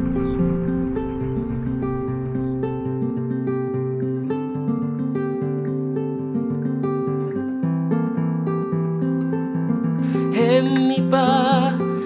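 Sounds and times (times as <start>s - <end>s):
acoustic guitar playing: 0.0s - 12.0s.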